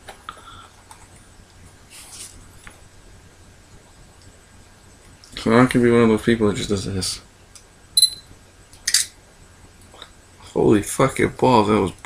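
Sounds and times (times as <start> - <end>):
camera beep: 8.0 - 8.3.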